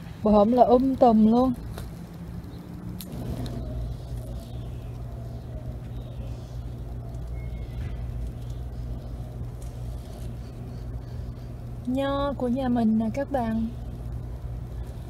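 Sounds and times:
engine running: 0.0s - 15.0s.

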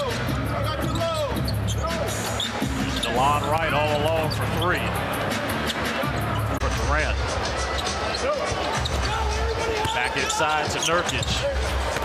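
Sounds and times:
sneakers squeaking on court: 0.8s - 6.6s, 7.6s - 12.0s.

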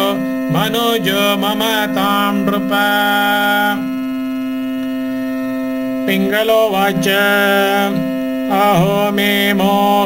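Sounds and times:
musical drone of held tones: 0.0s - 10.0s
voice chanting a held note: 0.0s - 10.0s.

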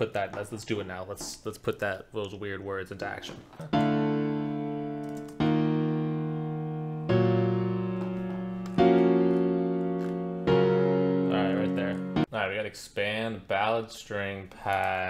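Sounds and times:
sustained piano chords: 3.6s - 12.3s.

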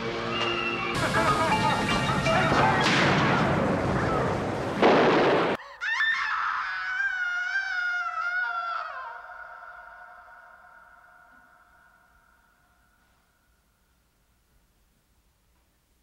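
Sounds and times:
loud crash: 1.0s - 5.6s
woman screaming: 5.6s - 11.8s.

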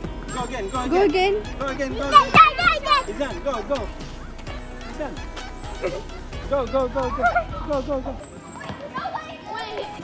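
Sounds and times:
children calling and talking: 0.0s - 10.0s.

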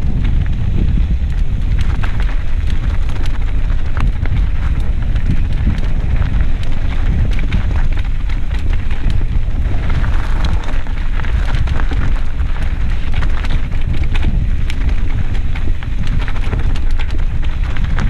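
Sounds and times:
bike clicks and rattles: 0.0s - 18.0s
tyres crunching over dirt and stones: 0.0s - 18.0s
wind buffeting microphone: 0.0s - 18.0s.

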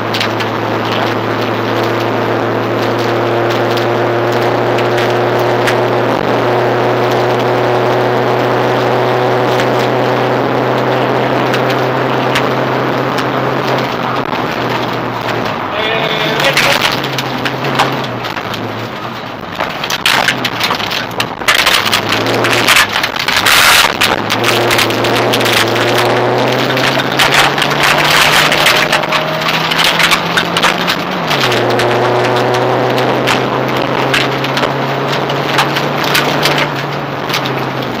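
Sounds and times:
rally car engine revving: 0.0s - 38.0s
gravel knocking on car underside: 16.4s - 38.0s.

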